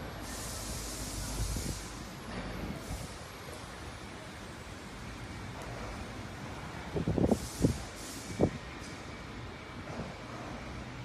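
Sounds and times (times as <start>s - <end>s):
brief hiss: 0.2s - 2.0s, 7.2s - 9.1s.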